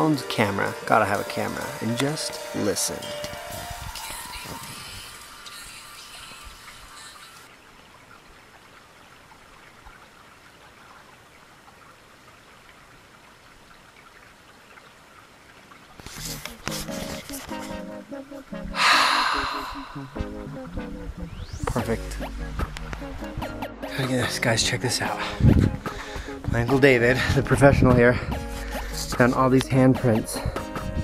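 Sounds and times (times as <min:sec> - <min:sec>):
background music: 0:00.0 - 0:07.4, 0:16.1 - 0:31.0
creek trickling over rocks: 0:00.0 - 0:20.3, 0:22.8 - 0:30.6.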